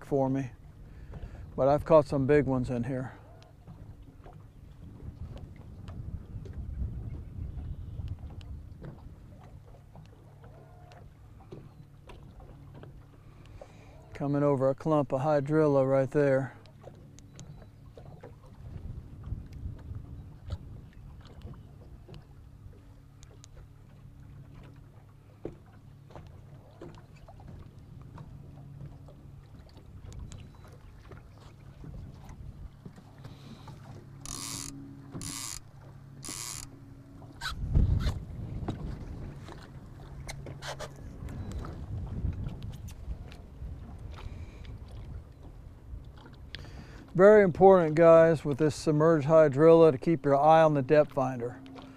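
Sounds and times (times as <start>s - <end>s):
boat motor humming: 0.0s - 51.9s.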